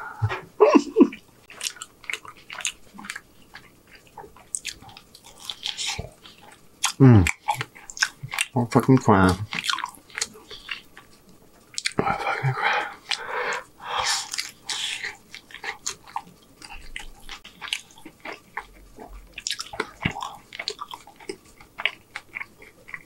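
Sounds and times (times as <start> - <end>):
chewing mouth sounds: 1.1 - 23.0.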